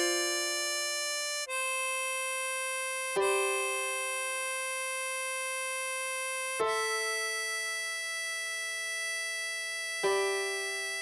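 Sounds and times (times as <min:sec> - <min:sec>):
harmonica holding a note: 0:00.0 - 0:11.0.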